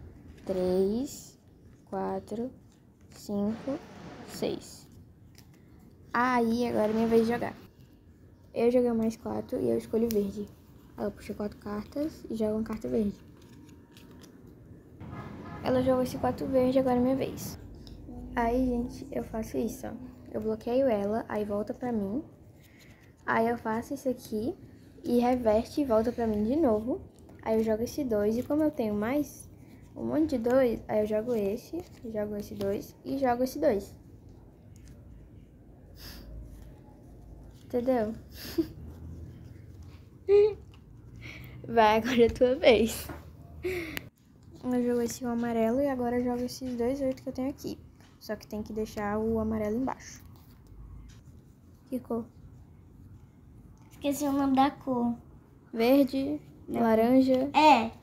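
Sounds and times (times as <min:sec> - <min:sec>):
playing cards clicking and rustling: 0:04.4 - 0:08.0, 0:08.6 - 0:14.8, 0:20.1 - 0:35.4, 0:44.2 - 0:48.2, 0:48.9 - 0:51.5.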